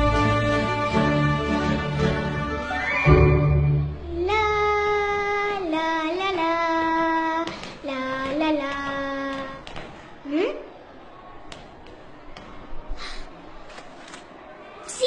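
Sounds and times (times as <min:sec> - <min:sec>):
child singing held notes: 0:04.0 - 0:09.7.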